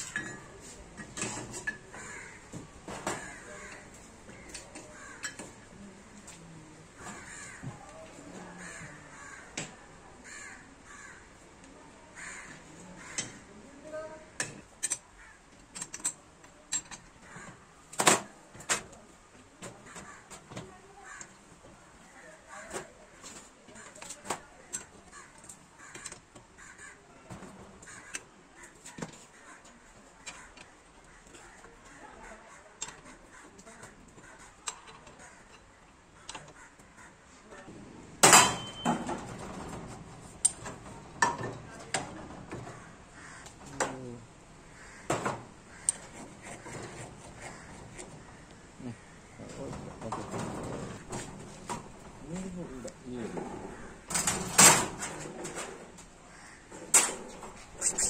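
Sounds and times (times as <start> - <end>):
metal parts clicking and clanking: 0.0 - 0.4, 14.4 - 15.1, 15.7 - 17.1, 38.2 - 42.6, 53.4 - 56.1
loud metal clank: 38.2 - 39.3.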